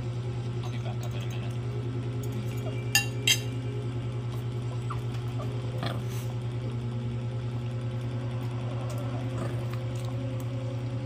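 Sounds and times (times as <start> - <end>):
low electrical hum: 0.0 - 11.0
close chewing: 8.4 - 10.6.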